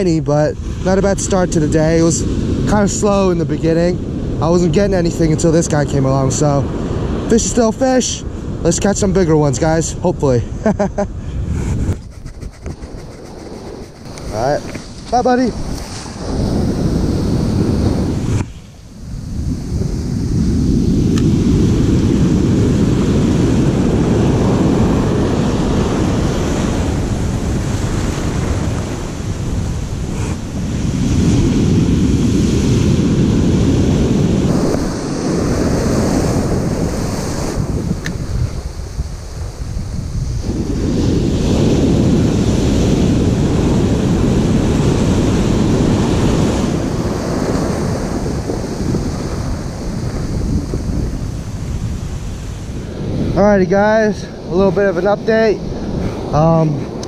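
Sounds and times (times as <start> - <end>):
wind buffeting microphone: 0.0 - 57.0
ocean surf breaking: 12.6 - 57.0.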